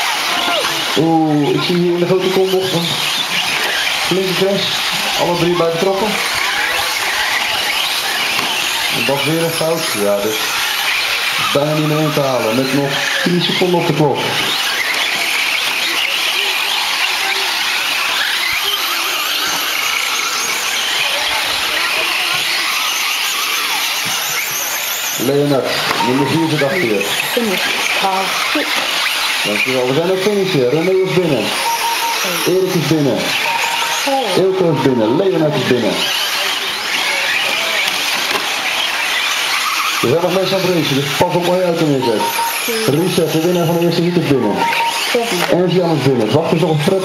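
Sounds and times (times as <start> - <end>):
rc truck motors whining: 0.0 - 47.0.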